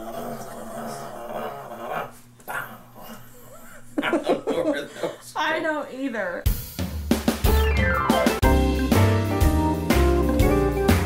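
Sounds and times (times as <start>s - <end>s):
dog-like growl: 0.0s - 3.6s.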